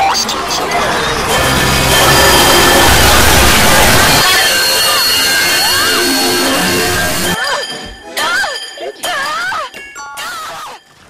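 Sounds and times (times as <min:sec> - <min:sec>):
overlapping music and sound effects: 0:00.3 - 0:08.2
steady high tones: 0:00.4 - 0:07.9
rising and falling tone glide: 0:00.8 - 0:07.4.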